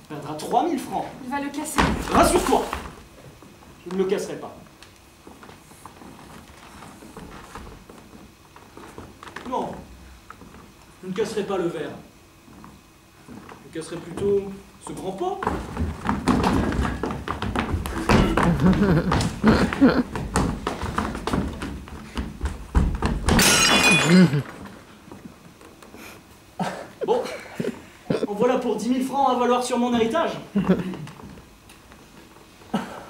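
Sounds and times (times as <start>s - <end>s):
low room rumble: 0.0s - 33.0s
footsteps on wooden stage floor: 1.0s - 11.0s, 12.4s - 23.3s
porcelain vase shattering: 23.3s - 24.4s.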